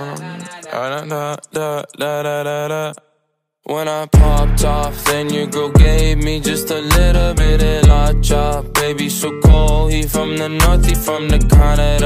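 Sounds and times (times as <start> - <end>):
person singing unaccompanied: 0.0 - 3.0, 3.6 - 12.0.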